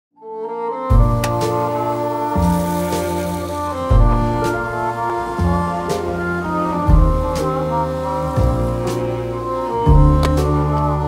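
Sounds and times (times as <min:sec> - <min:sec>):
held chords over deep bass: 0:00.9 - 0:11.0.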